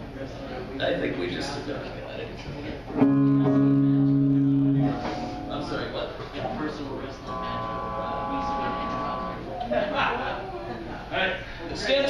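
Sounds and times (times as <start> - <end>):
faint voices chattering: 0.0 - 12.0
electric guitar chord sustained: 3.0 - 6.5, 7.2 - 9.5.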